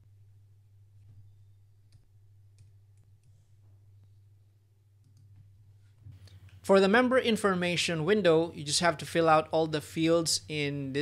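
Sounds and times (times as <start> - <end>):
low steady hum: 0.0 - 11.0
keyboard and mouse clicks: 5.0 - 6.6.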